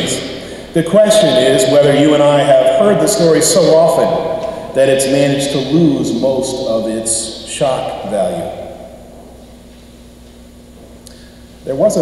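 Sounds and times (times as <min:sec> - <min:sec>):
man's voice echo: 0:00.0 - 0:09.0, 0:11.6 - 0:12.0
room hum and hiss: 0:00.0 - 0:12.0.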